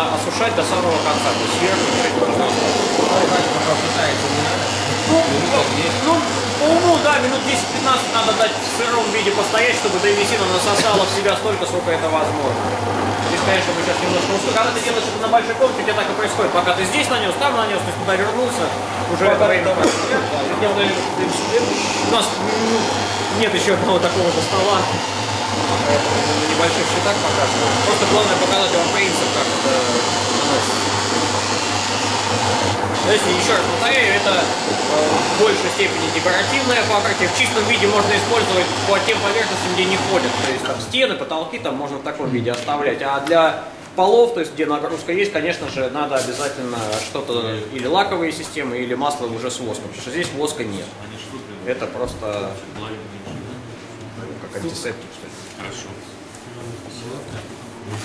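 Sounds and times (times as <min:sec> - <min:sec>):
floor buffing machine running: 0:00.0 - 0:40.8.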